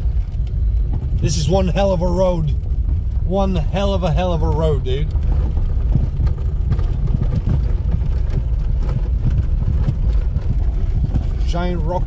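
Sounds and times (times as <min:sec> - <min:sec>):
car engine and tyres rumbling: 0:00.0 - 0:12.0
car body knocks and rattles: 0:04.1 - 0:12.0.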